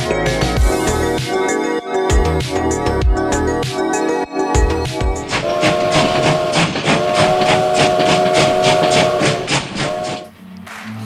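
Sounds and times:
rapid steam chuffing: 5.2s - 10.3s
chord-like whistle: 5.3s - 10.3s.

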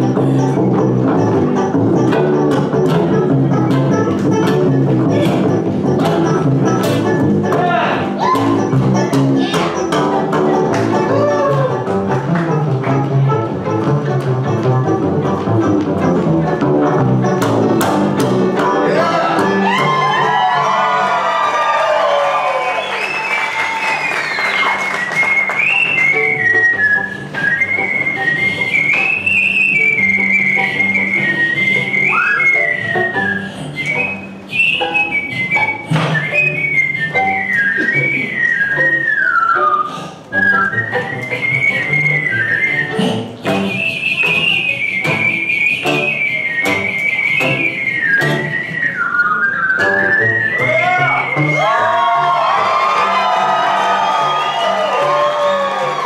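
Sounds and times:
bluegrass band playing: 0.0s - 22.3s, 23.1s - 56.0s
whistled melody: 21.8s - 56.0s.

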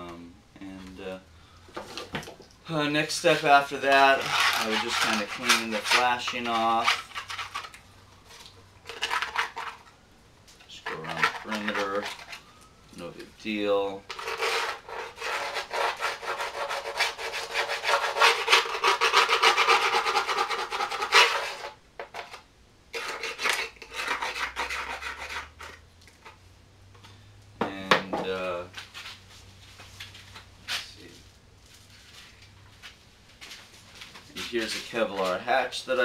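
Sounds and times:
hand tool scraping fiberglass: 3.0s - 7.8s, 10.7s - 12.5s, 14.1s - 21.8s, 22.9s - 25.8s, 34.3s - 36.0s.

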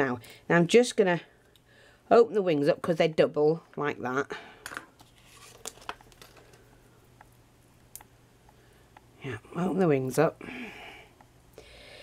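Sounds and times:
low steady hum: 0.0s - 12.0s
paper rustling and clicks: 5.0s - 6.6s.

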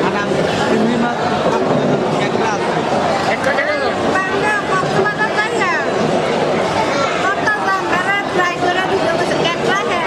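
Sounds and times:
restaurant hubbub: 0.0s - 10.0s
woman talking: 7.2s - 10.0s.

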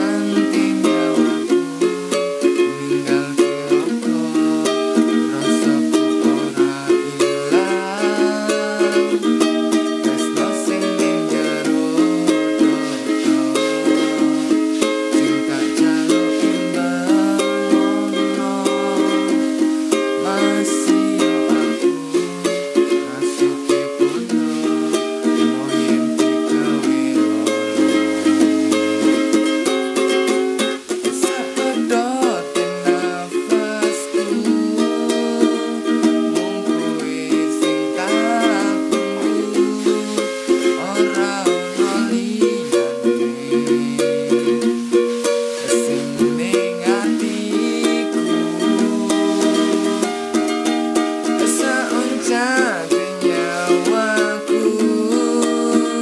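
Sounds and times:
ukulele strumming: 0.0s - 56.0s.

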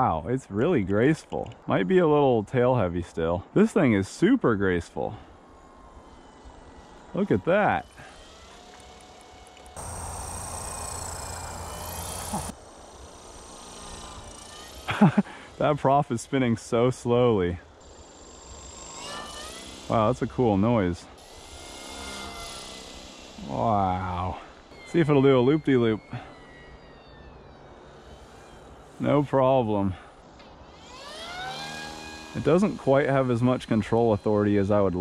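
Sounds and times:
faint low hum: 0.0s - 17.8s
electric motor whining in flight: 5.2s - 16.5s, 17.7s - 29.2s, 30.1s - 35.0s.

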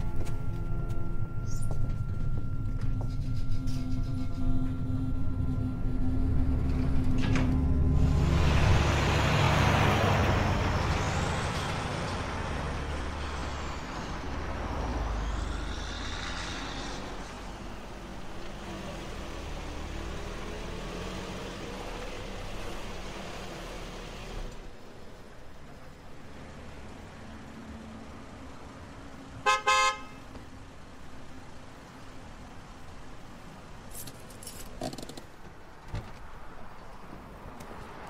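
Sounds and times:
high wavering squeal: 0.0s - 23.0s
vehicle passing rush: 6.3s - 29.4s.

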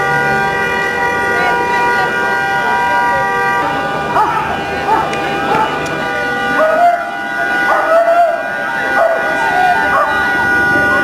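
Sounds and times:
steady high tones: 1.4s - 11.0s
dog barking in yelps: 4.2s - 5.8s.

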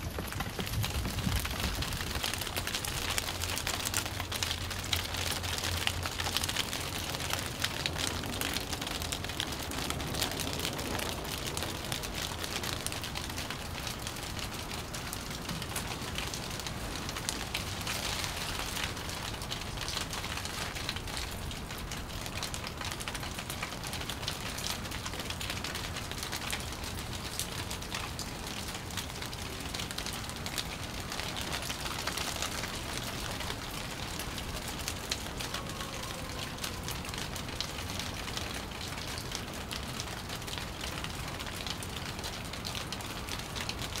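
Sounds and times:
steady rain hiss: 0.0s - 44.0s.

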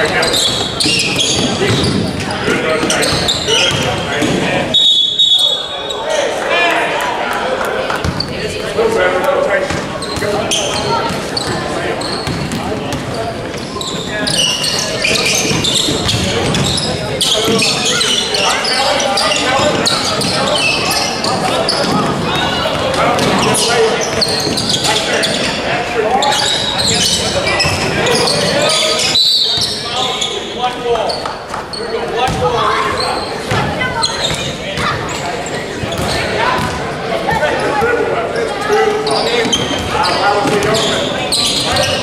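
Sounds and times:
sneakers squeaking: 0.0s - 6.4s, 7.9s - 9.0s, 9.6s - 42.0s
players calling out: 0.0s - 42.0s
basketball bouncing on wooden floor: 32.3s - 32.5s.

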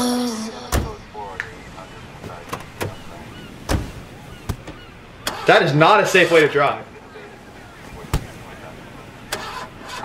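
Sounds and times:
faint steady noise: 0.0s - 10.0s
sharp thump: 3.7s - 4.8s, 8.1s - 8.4s.

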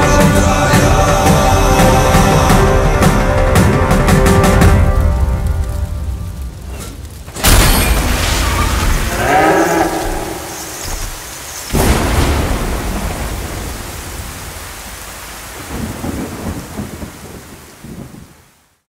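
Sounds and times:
heavy rain: 0.0s - 18.9s
thunderclap rumbling: 3.6s - 18.6s
bull bellowing: 9.0s - 10.7s.

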